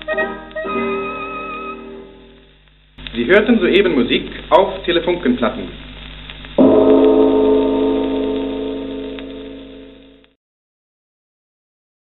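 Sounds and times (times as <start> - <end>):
gong-like ringing tone: 6.6 - 10.2.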